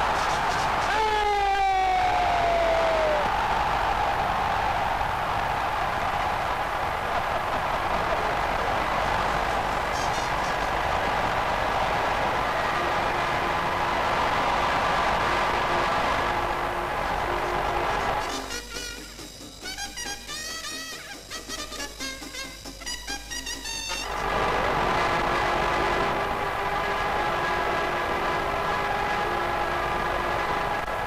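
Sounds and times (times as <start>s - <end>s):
steady rush of noise: 0.0s - 18.4s, 24.0s - 31.0s.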